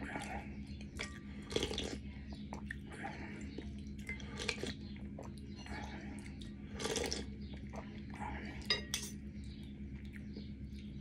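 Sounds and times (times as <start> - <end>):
faint steady hum: 0.0 - 11.0
cutlery clinking in ceramic bowl: 8.7 - 9.2.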